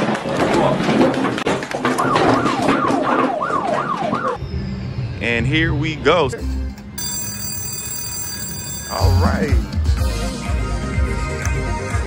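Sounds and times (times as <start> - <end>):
slot machine high-pitched tones: 6.4 - 10.1.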